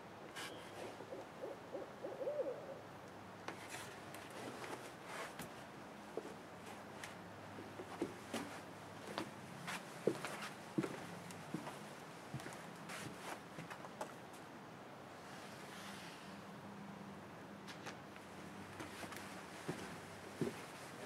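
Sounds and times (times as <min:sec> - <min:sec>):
owls hooting: 0:00.4 - 0:02.9.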